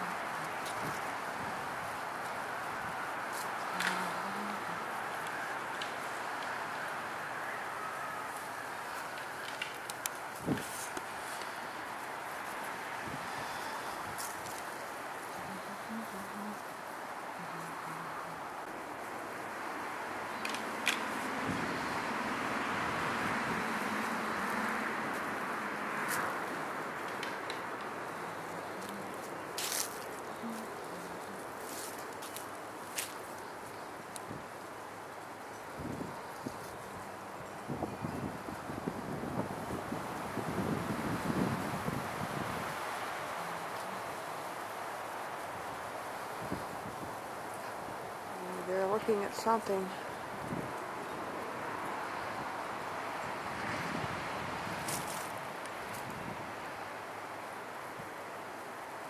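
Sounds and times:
brush and leaves rustling: 0:00.0 - 0:59.0
outdoor hiss: 0:00.0 - 0:59.0.

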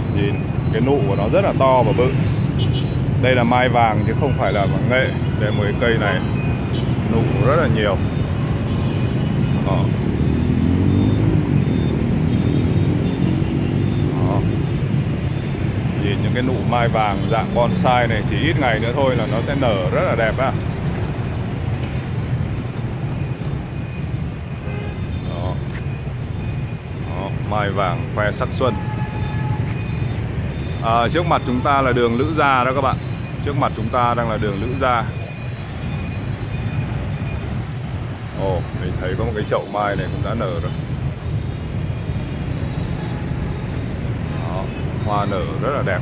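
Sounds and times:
low rumble of passing vehicles: 0:00.0 - 0:46.0
engine hum rising and falling: 0:10.0 - 0:14.6.

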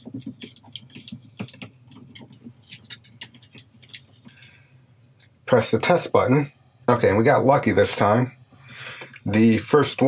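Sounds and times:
cables rustling: 0:00.0 - 0:05.4.

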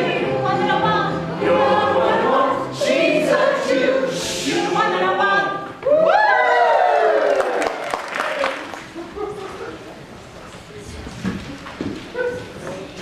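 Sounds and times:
choir singing: 0:00.0 - 0:05.8
audience applause with whoops: 0:05.8 - 0:09.0.

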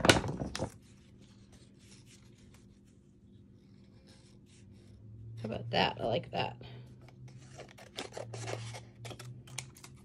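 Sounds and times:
paper rustling and clicking: 0:00.0 - 0:02.7
steady low hum: 0:00.6 - 0:10.0.

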